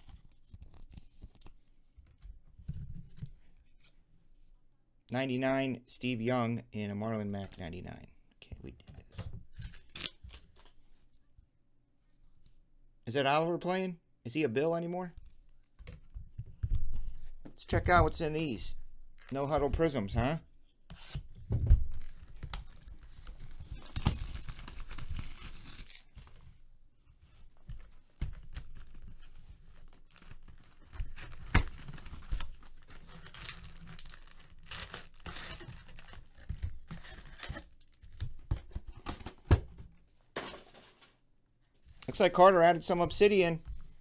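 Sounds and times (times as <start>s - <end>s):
plastic wrap and cardboard tearing: 22.3s - 26.2s, 29.8s - 38.0s
foil packs crinkling: 29.8s - 37.9s.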